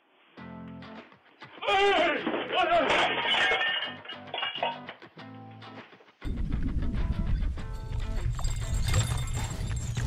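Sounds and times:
background music: 0.4s - 10.0s.

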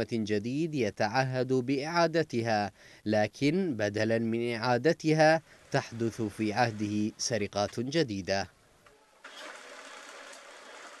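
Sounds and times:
banknote counting machine whirring: 9.2s - 11.0s.

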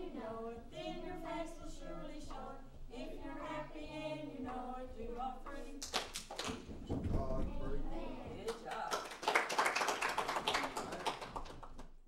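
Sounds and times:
people clapping: 5.8s - 7.2s, 8.3s - 12.0s.

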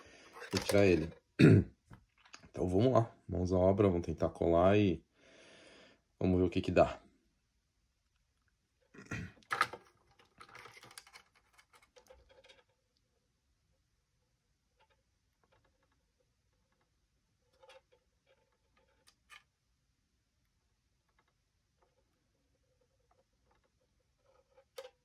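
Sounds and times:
plastic handling noises: 0.0s - 2.6s, 9.1s - 12.8s
rustling: 8.9s - 13.2s.

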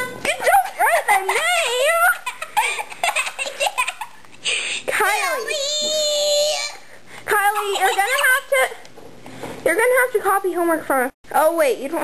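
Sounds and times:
girl laughing: 0.4s - 4.4s, 7.4s - 8.7s.

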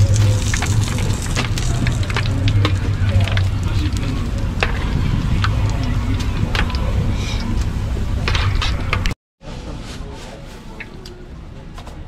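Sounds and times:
hot oil sizzling in a wok: 0.0s - 3.8s
metal tongs turning food: 0.0s - 9.1s
steady low hum: 0.0s - 9.8s.

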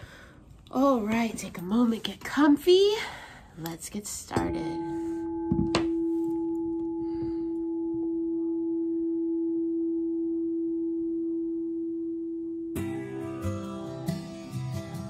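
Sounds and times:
singing bowl ringing: 4.3s - 13.5s
acoustic guitar music: 12.7s - 15.0s.

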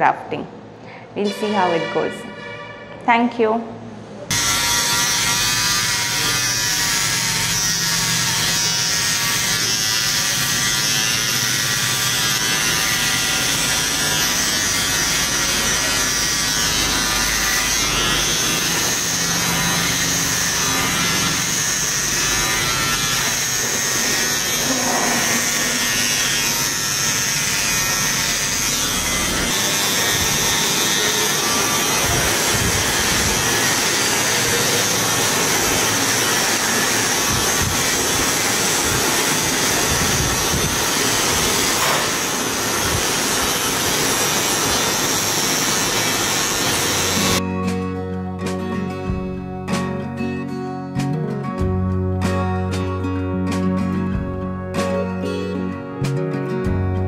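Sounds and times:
electric hair clipper buzzing: 4.3s - 47.4s.

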